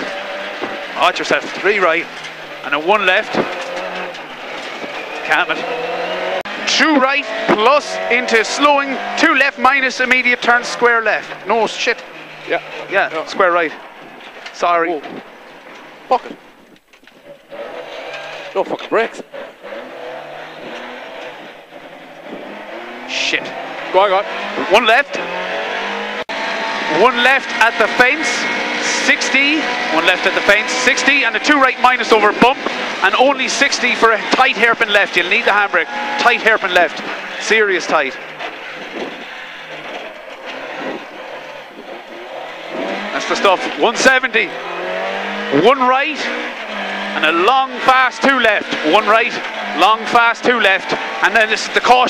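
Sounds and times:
rally car engine from inside: 0:00.0 - 0:14.2, 0:17.2 - 0:51.9
road noise: 0:00.0 - 0:52.0.

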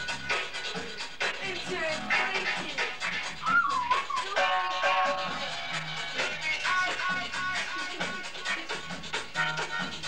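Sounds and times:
high wavering wail: 0:03.4 - 0:05.4.

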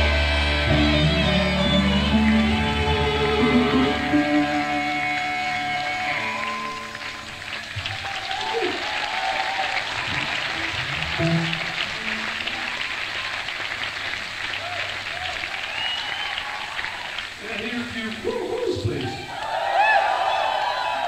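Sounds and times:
audience applauding and cheering: 0:00.0 - 0:21.0
people shouting: 0:08.0 - 0:10.2.

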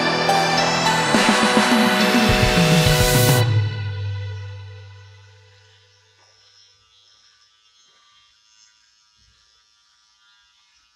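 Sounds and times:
hair trimmer buzzing: 0:05.0 - 0:10.9.

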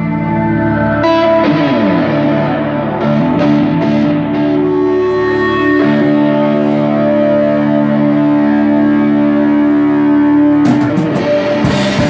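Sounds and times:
distorted electric guitar chord: 0:00.0 - 0:12.0
drums and cymbals crash: 0:10.7 - 0:12.0.

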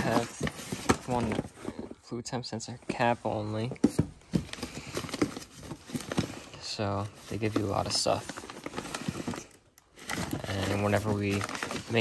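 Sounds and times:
rustling of plastic bags and paper: 0:00.0 - 0:12.0.

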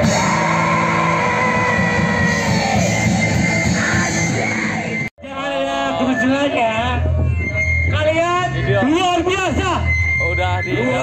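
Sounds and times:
punk band playing live: 0:00.0 - 0:08.0.

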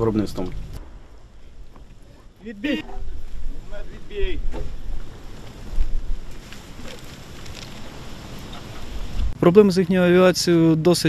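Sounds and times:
wind buffeting microphone: 0:00.0 - 0:09.4.

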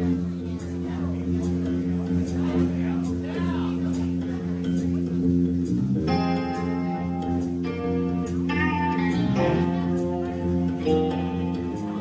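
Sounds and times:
electric guitar ringing notes: 0:06.0 - 0:12.0.

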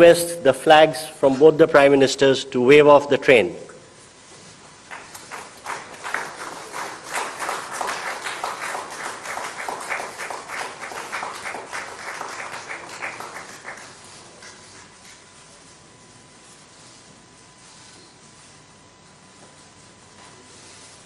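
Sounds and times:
audience applauding: 0:04.8 - 0:14.9.

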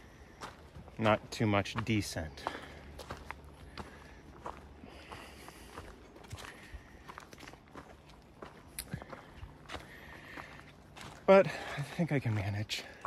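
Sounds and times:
footsteps on forest trail: 0:00.0 - 0:13.0.

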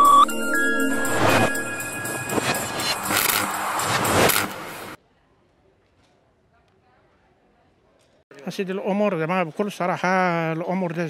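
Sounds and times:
whooshing transition effect: 0:00.2 - 0:05.0.

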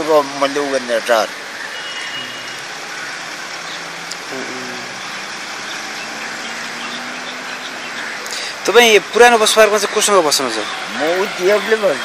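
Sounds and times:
road traffic noise: 0:00.0 - 0:12.0
faint low engine hum: 0:02.2 - 0:08.6.

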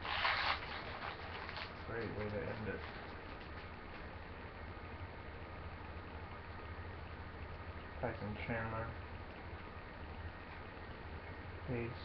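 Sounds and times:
foil wrapper ripping: 0:00.0 - 0:03.7
foil wrapper crinkling: 0:00.0 - 0:04.0.

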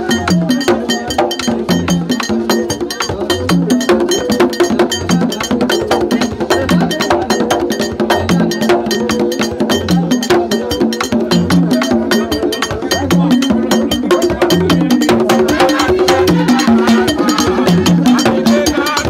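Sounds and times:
hand drums: 0:00.0 - 0:19.0
struck metal bell pattern: 0:00.0 - 0:19.0.

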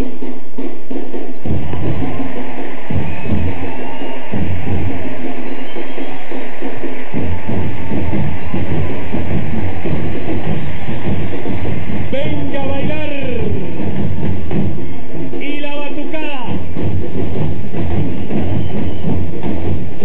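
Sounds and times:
deep bass drums: 0:00.0 - 0:20.0
samba percussion band drumming: 0:00.0 - 0:20.0.

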